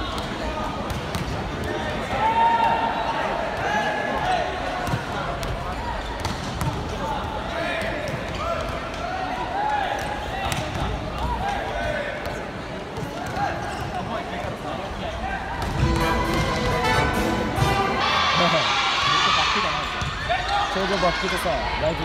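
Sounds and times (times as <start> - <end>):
people shouting and calling: 15.3 - 22.0.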